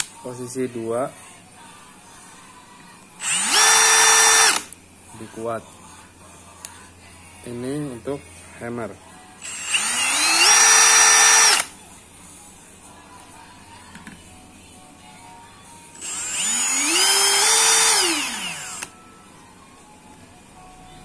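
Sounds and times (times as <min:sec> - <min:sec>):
hammer drill whining: 0:03.2 - 0:04.8, 0:09.4 - 0:11.7, 0:16.0 - 0:19.0.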